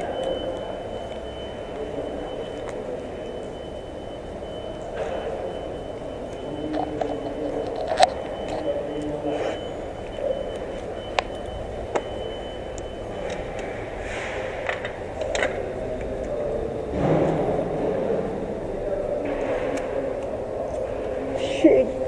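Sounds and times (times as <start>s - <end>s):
steady rumble of car park: 0.0s - 22.0s.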